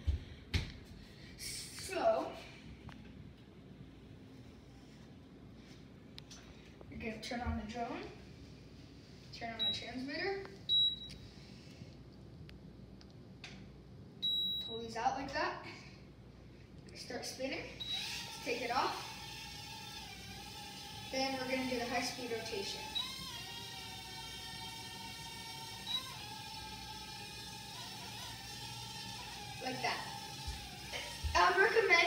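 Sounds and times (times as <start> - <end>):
drone propellers whining: 17.9 - 32.0.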